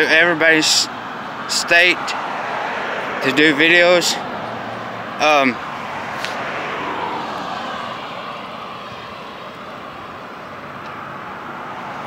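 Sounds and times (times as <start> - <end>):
passing vehicle rushing: 0.8 - 12.0.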